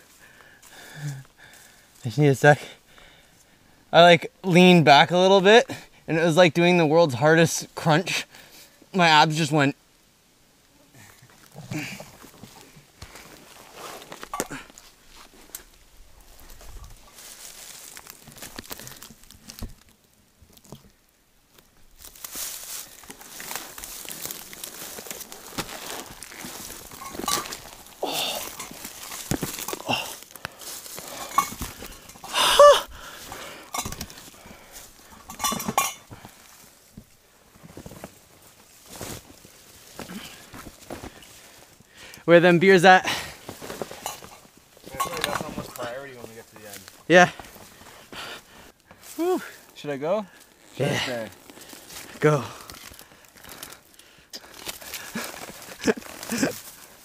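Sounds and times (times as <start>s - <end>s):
rustle of packs and brush: 11.0s - 20.0s, 21.6s - 32.3s, 33.0s - 41.9s, 43.3s - 57.0s
footsteps on forest trail: 11.2s - 19.9s, 21.8s - 42.2s, 43.1s - 57.0s
gear clinking: 25.9s - 30.1s.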